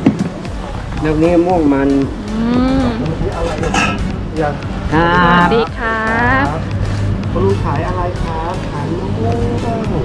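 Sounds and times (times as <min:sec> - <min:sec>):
steady low rumble: 0:00.4 - 0:10.0
person's drawn-out vocal sound: 0:02.2 - 0:03.2.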